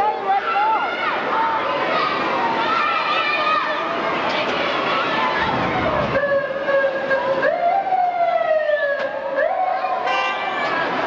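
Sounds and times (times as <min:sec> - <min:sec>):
siren wailing: 0:05.7 - 0:10.7.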